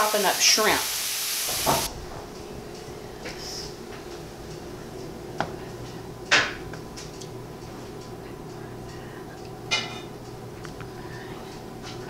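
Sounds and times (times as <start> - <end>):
onions sizzling in frying pan: 0.0 - 2.0
faint hum: 0.0 - 12.0.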